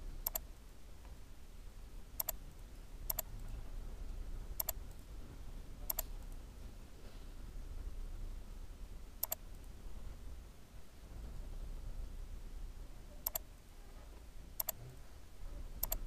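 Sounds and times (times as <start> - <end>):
faint low hum: 0.0 - 16.0
mouse button clicks: 13.2 - 13.4.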